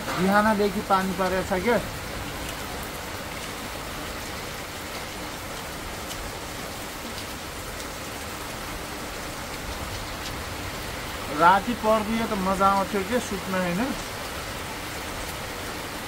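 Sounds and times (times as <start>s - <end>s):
heavy rain falling: 0.0s - 16.0s.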